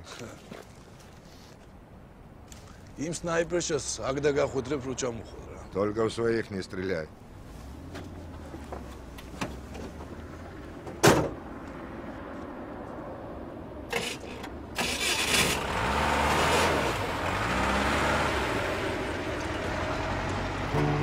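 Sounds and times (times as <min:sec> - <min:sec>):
truck door slamming: 0:10.9 - 0:11.4
truck engine starting and revving: 0:13.9 - 0:21.0.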